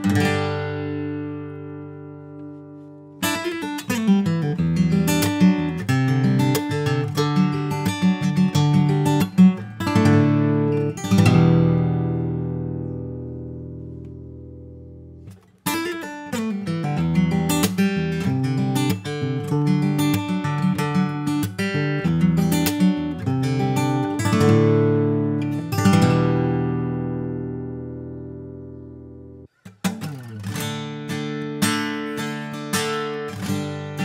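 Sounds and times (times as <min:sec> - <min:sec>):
acoustic guitar playing: 0:00.0 - 0:34.0.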